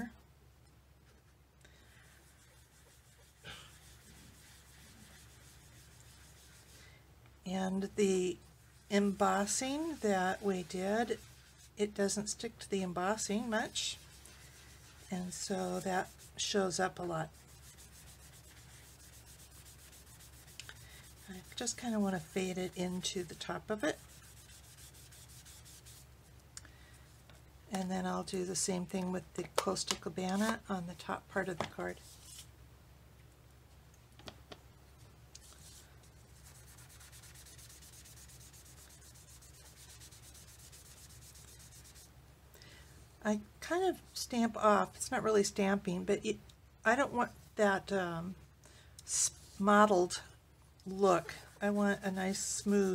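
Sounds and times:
sponge rubbing on cardstock: 1.8 - 6.9, 8.7 - 26.1, 35.4 - 42.1.

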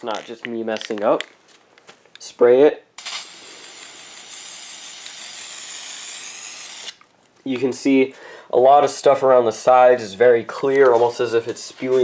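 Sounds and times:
spray-paint can hissing: 3.0 - 7.0.

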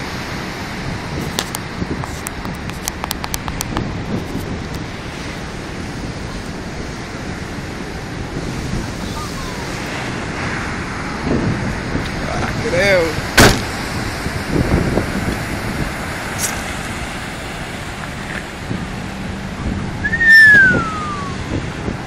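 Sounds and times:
breaking surf: 0.0 - 22.0
wind buffeting microphone: 0.0 - 22.0
sharp clicks: 2.2 - 3.8.

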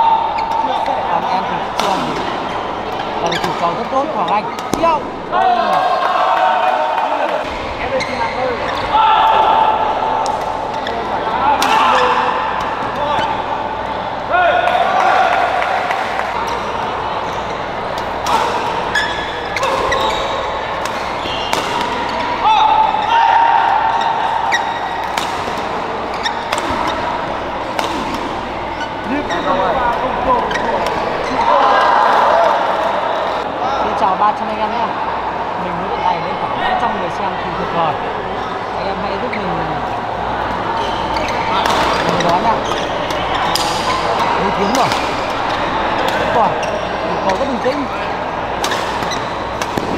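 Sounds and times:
rackets hitting shuttlecock: 18.0 - 22.2, 24.5 - 28.6, 41.6 - 44.0, 44.7 - 46.4, 48.6 - 49.9.

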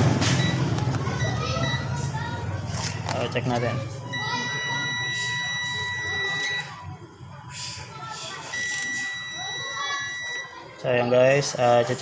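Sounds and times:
multimeter high-pitched beeps: 1.2 - 2.0, 4.1 - 6.8, 8.4 - 10.6.

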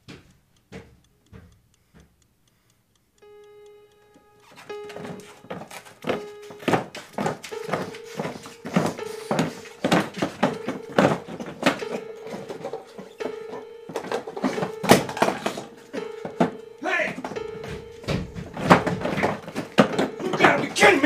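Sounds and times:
plastic chair legs banging on concrete: 4.9 - 21.0.

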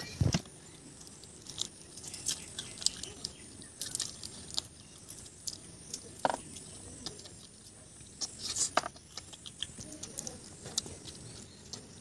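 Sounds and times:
people chewing food: 0.0 - 12.0.

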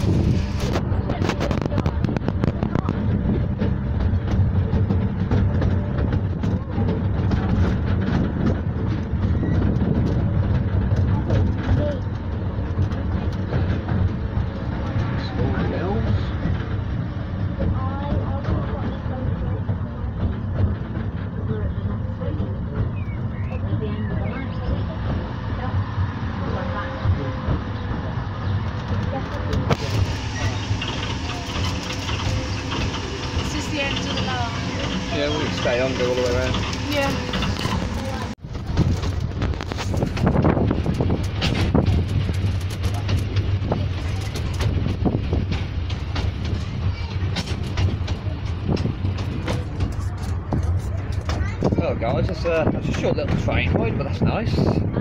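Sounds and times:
train wheels rumbling: 0.0 - 55.0
carriage clicking and rattling: 27.5 - 53.8.

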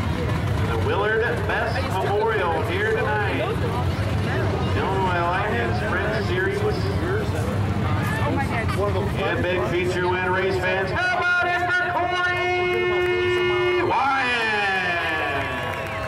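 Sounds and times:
voices of people: 0.0 - 16.0.

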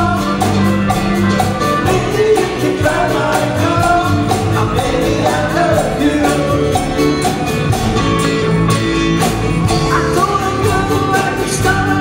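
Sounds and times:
person singing: 0.0 - 7.5, 9.6 - 12.0
drum kit beat: 0.0 - 12.0
guitars and bass: 0.0 - 12.0.

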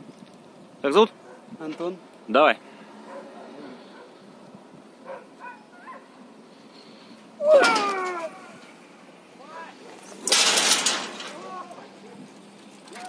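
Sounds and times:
faint murmurs: 2.6 - 4.4
person yelling: 7.4 - 8.6.

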